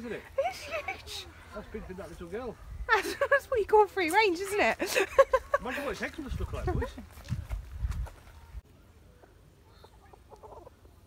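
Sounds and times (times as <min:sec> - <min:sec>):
wind rumble on microphone: 0:06.1 - 0:08.6
hen clucking: 0:09.2 - 0:11.0.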